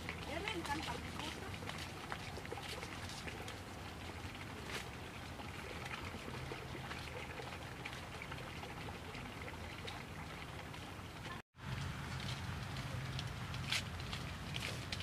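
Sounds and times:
water trickling in channel: 0.0 - 15.0.

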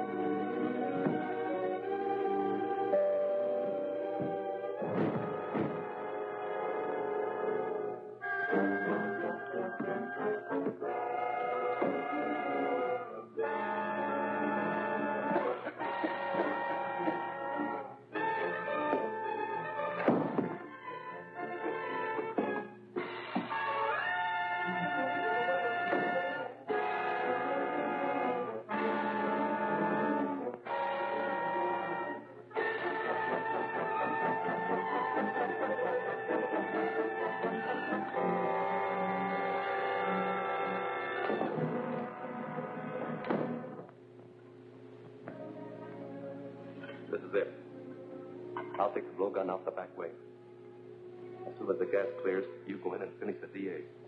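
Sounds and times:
dramatic orchestral music: 0.0 - 43.8.

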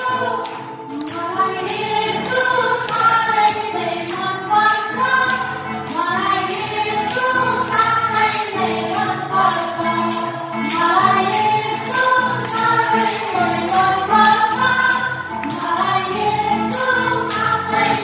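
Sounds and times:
female vocal group singing: 0.0 - 18.0.

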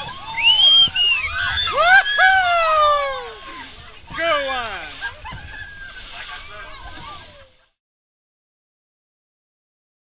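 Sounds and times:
people whooping and shrieking: 0.0 - 3.8, 4.9 - 7.2.

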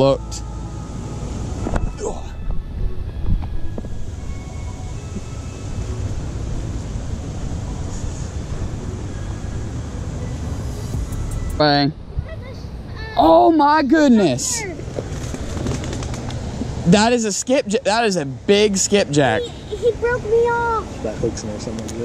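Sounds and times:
low rumble: 0.6 - 13.0.

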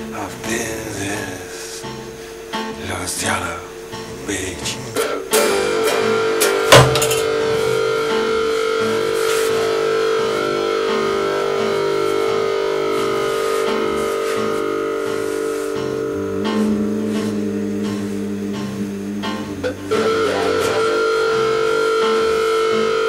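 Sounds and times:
blues electric guitar: 0.0 - 23.0.

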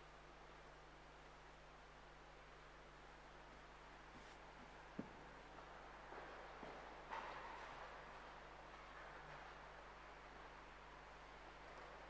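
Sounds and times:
faint steady hiss: 0.0 - 12.0.

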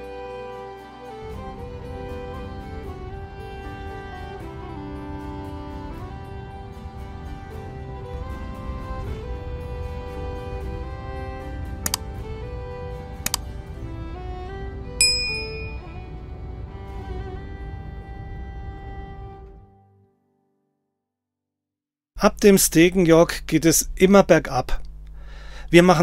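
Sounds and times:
background music with string tones: 0.0 - 20.6
short clicks: 11.8 - 12.1, 13.2 - 13.5
bright bell ding: 15.0 - 15.9.

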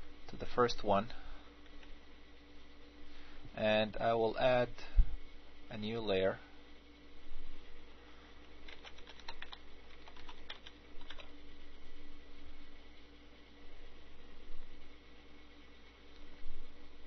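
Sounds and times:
faint steady hum: 0.0 - 17.0
computer keyboard key clicks: 8.7 - 11.3.

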